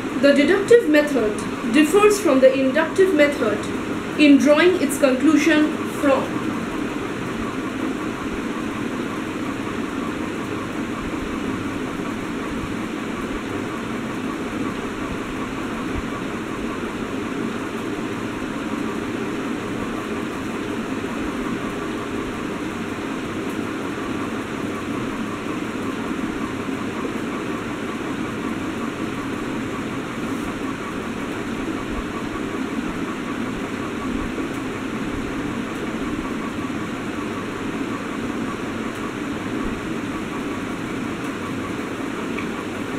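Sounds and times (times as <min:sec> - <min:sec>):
steady background noise: 0:00.0 - 0:42.9.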